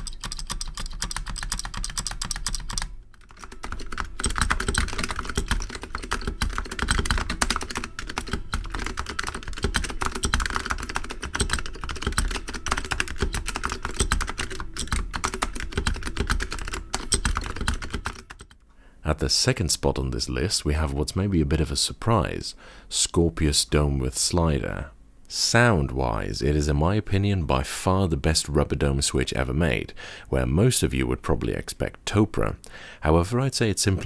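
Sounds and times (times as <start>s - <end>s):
fast typing on keyboard: 0.0s - 18.6s.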